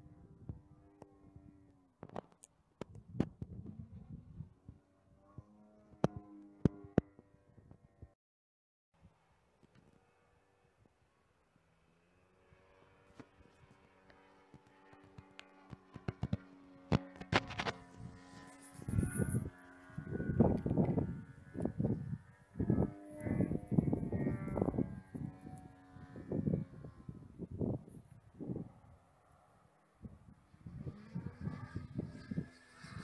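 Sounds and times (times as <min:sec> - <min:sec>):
wind buffeting on microphone: 0:02.9 - 0:04.6, 0:18.8 - 0:28.9, 0:30.0 - 0:33.0
model plane engine running: 0:09.7 - 0:33.0.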